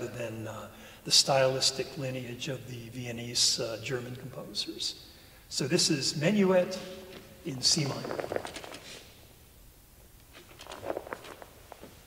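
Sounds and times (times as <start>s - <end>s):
sheet music rustling: 6.8s - 9.1s
soft footsteps: 7.0s - 9.1s, 10.2s - 12.0s.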